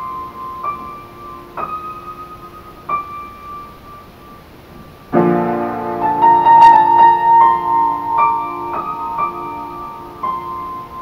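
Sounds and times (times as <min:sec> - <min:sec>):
upright piano playing: 0:00.0 - 0:11.0.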